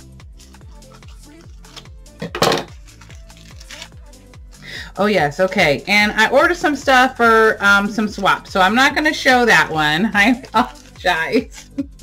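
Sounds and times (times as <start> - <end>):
background music with steady beat: 0.0 - 12.0
plastic mailer crinkling: 2.8 - 4.0, 10.6 - 11.1.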